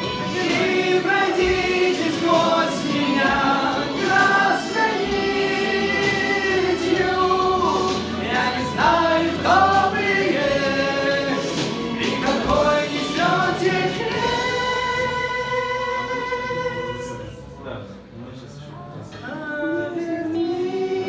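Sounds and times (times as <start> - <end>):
men singing: 0.0 - 17.5, 19.2 - 21.0.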